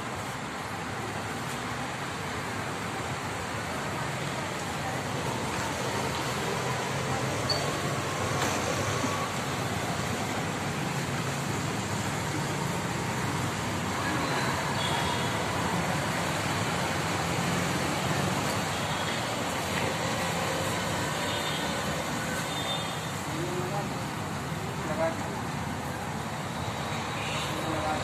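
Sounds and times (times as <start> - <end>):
road traffic rumble: 0.0 - 28.0.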